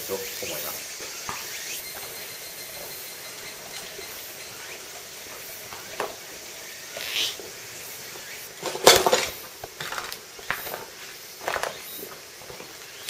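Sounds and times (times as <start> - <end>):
steady high hiss: 0.0 - 13.0.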